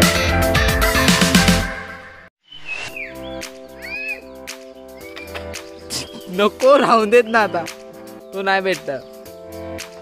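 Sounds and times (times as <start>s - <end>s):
loud background music: 0.0s - 2.1s
short bird chirps: 2.4s - 4.3s
soft music with long held notes: 3.1s - 10.0s.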